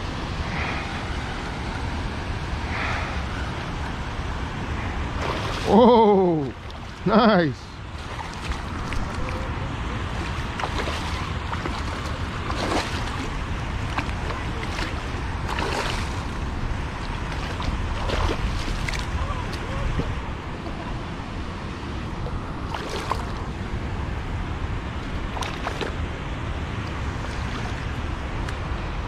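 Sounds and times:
moving water: 0.0s - 29.0s
wind rumble on microphone: 0.0s - 29.0s
fish splashing and thrashing: 5.1s - 7.1s, 7.8s - 20.8s, 22.3s - 23.5s, 25.0s - 26.0s.

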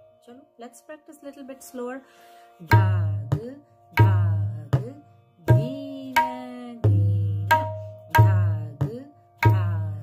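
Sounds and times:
woman speaking softly: 0.2s - 2.0s.

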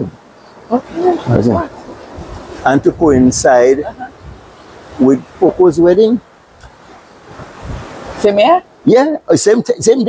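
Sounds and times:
sea surf hiss: 0.1s - 9.1s
wind rumble on microphone: 0.8s - 6.0s, 6.6s - 8.3s
man's voice: 1.3s - 1.7s, 2.6s - 3.9s.

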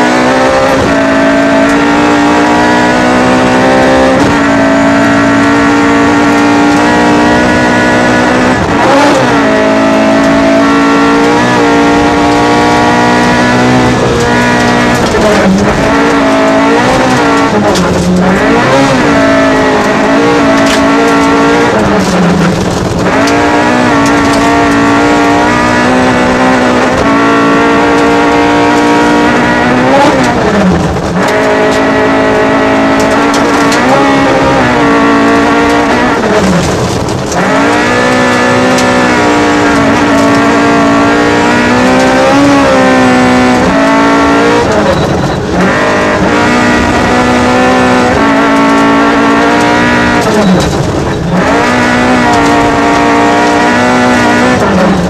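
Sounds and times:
car engine revving: 0.0s - 55.0s.

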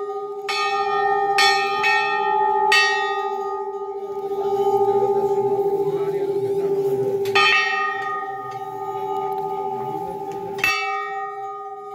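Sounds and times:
metal temple bells ringing: 0.0s - 11.9s.

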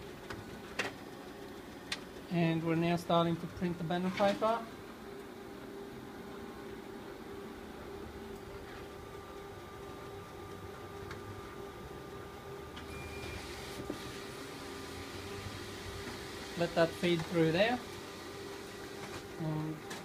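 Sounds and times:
printer humming: 0.0s - 20.0s.

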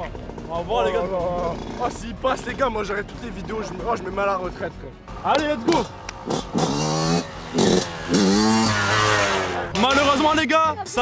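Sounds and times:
dirt bike revving: 0.0s - 3.8s, 5.1s - 10.5s.

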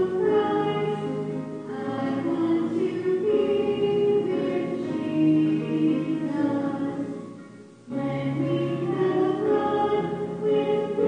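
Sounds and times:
voices singing a hymn: 0.0s - 7.3s, 7.9s - 11.0s.

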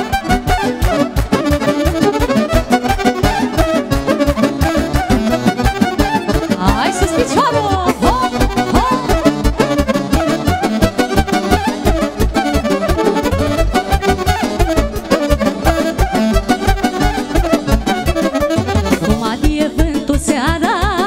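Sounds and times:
violin melody: 0.0s - 20.4s
accordion: 0.0s - 21.0s
fast steady beat: 0.0s - 21.0s.

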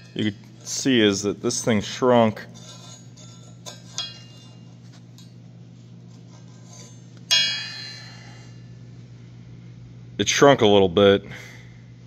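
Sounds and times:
steady low hum: 0.0s - 12.0s
ringing metal strike: 2.7s - 5.4s, 6.3s - 8.8s.

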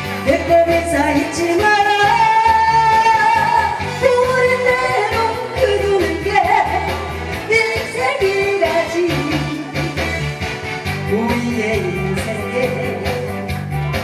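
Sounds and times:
woman singing into a microphone: 0.0s - 13.6s
backing music with steady beat: 0.0s - 14.0s.

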